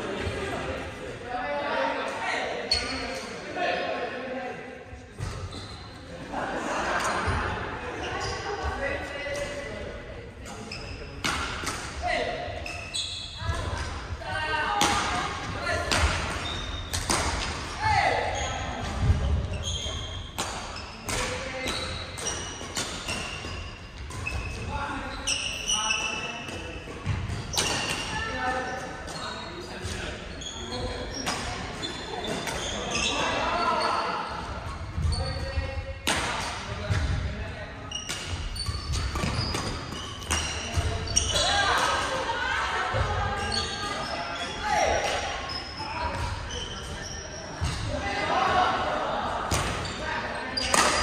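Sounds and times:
rackets striking shuttlecock: 0:38.0 - 0:40.9.

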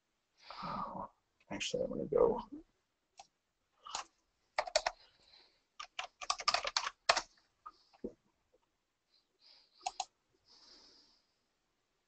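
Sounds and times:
computer keyboard typing: 0:03.9 - 0:05.0, 0:05.8 - 0:07.3, 0:09.8 - 0:10.1.

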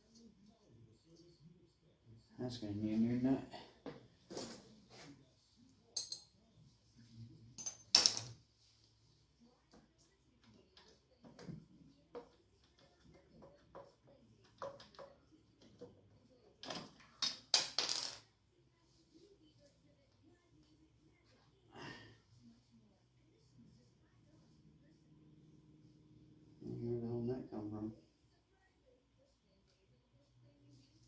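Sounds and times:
metal tools clinking: 0:16.6 - 0:18.2.

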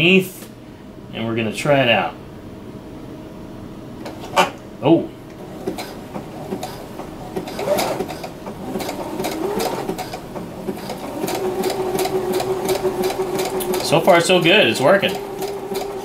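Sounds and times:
sewing machine stitching: 0:05.6 - 0:16.0.

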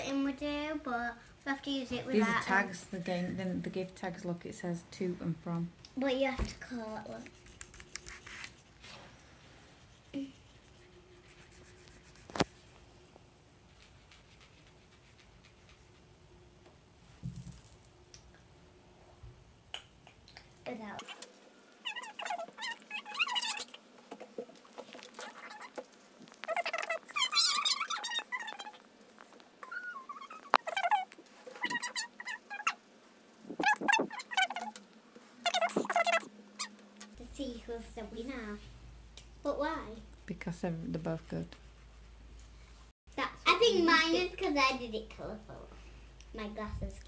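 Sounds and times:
children's high-pitched squeaky voices: 0:26.5 - 0:28.8, 0:29.6 - 0:32.8, 0:33.6 - 0:34.7.

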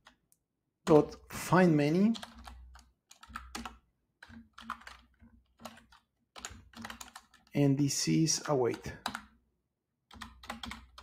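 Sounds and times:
typing on computer keyboard: 0:01.9 - 0:07.6, 0:08.6 - 0:09.4, 0:10.1 - 0:11.0.

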